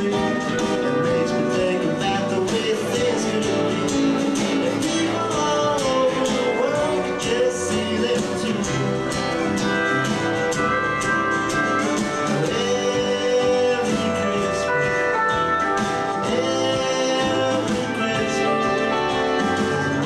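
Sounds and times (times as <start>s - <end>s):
live band playing: 0.0s - 20.0s.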